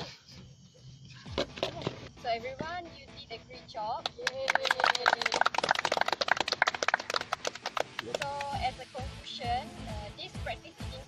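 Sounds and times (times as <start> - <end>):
people applauding: 4.1 - 8.6.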